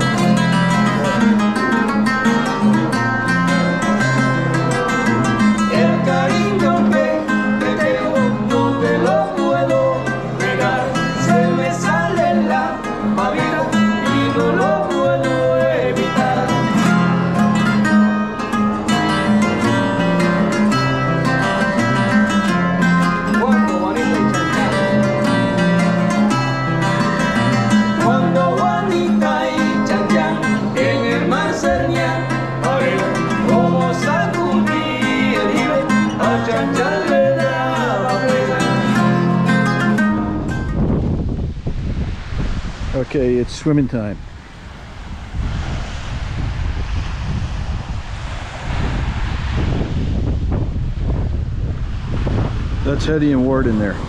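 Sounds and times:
acoustic guitars strummed and picked: 0.0 - 43.0
man singing: 5.6 - 17.1, 23.3 - 25.4, 27.8 - 39.5
wind on microphone: 39.0 - 54.0.

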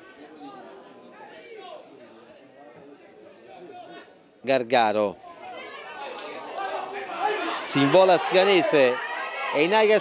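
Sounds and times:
commentary speech: 0.0 - 10.0.

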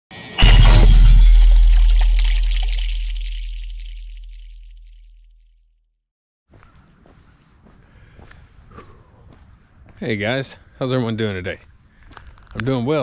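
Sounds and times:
loud crash with deep boom: 0.4 - 5.0.

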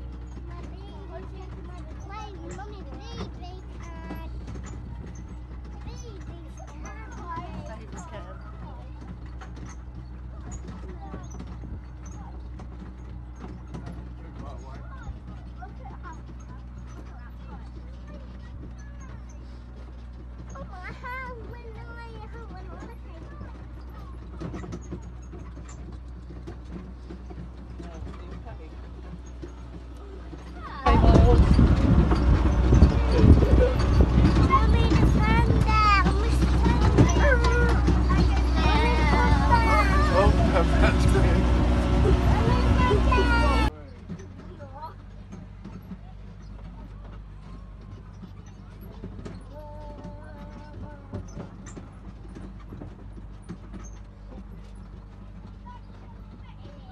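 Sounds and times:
faint passenger voices: 0.0 - 56.9
rattling rush with knocks: 0.0 - 56.9
small train engine drone: 0.0 - 56.9.

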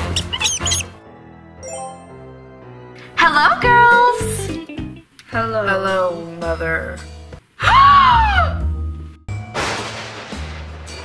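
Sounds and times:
mouse squeaks: 0.0 - 1.0
background music: 0.0 - 9.6.

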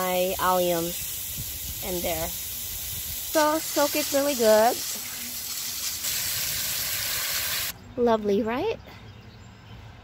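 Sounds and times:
hose nozzle spray hissing: 0.0 - 7.7.

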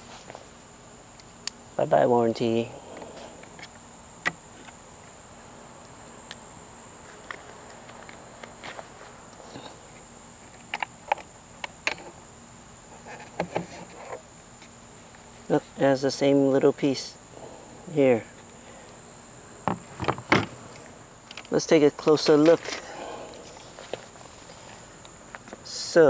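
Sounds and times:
high-pitched insect drone: 0.8 - 26.0.

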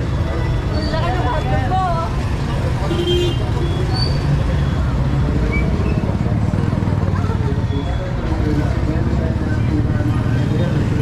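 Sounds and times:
motorcycle engines rumbling: 0.0 - 11.0
people talking: 0.3 - 11.0.

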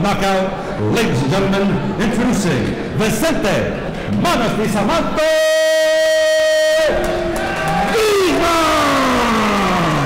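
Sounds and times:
crowd in a hall: 0.0 - 10.0.

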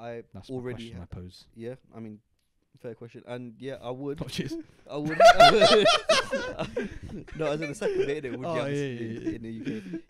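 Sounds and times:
men laughing hard: 5.1 - 10.0.

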